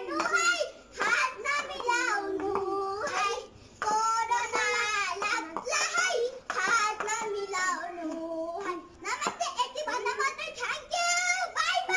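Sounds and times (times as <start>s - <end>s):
girls singing: 0.0s - 11.9s.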